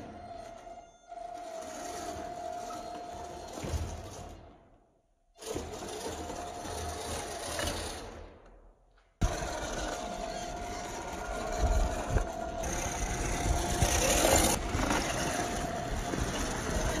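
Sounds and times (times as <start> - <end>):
electric motor whining: 9.2 - 17.0.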